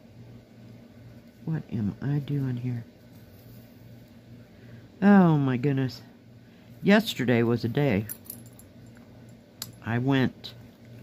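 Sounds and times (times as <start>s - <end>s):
fabric rustling: 2.4s - 4.1s.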